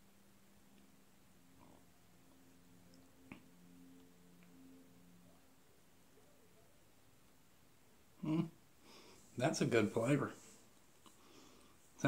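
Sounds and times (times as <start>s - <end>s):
faint low tones: 0.0s - 12.0s.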